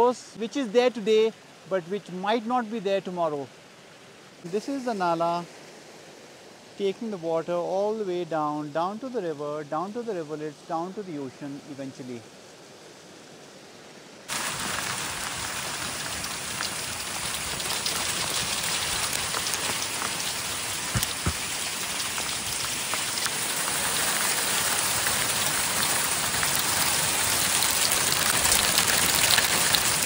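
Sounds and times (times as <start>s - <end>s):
hailstones pelting down: 14.3s - 30.0s.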